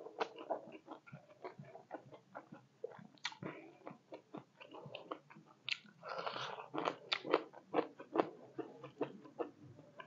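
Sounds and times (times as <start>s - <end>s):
chewing food: 0.0s - 10.0s.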